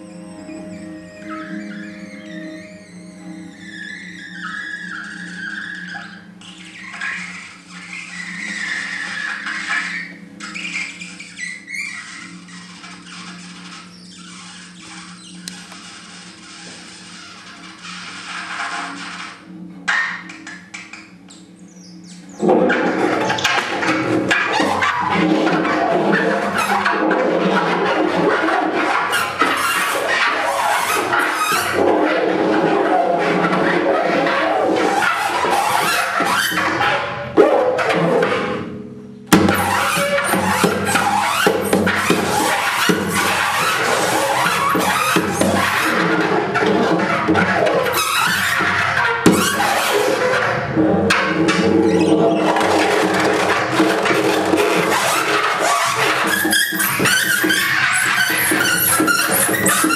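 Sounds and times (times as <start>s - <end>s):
steady drone: 0.0s - 11.2s.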